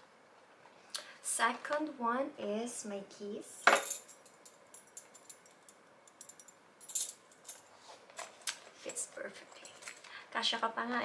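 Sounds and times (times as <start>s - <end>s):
keys jingling: 3.8s - 7.6s.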